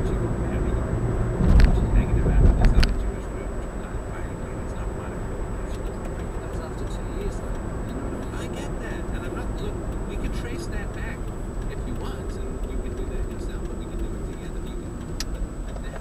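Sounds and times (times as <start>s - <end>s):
engine rumble: 0.0s - 16.0s
road and tyre noise: 0.0s - 16.0s.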